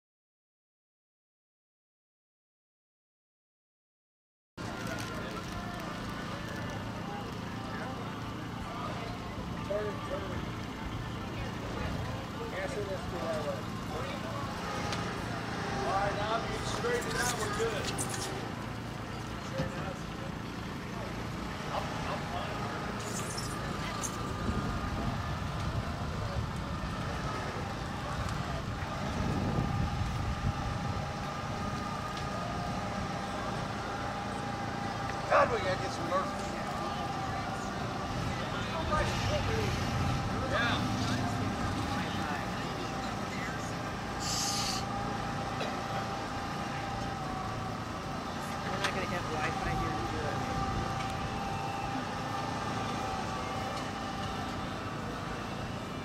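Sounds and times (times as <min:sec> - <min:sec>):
people talking: 0:04.6 - 0:30.6, 0:31.8 - 0:56.0
low mechanical hum: 0:04.6 - 0:56.0.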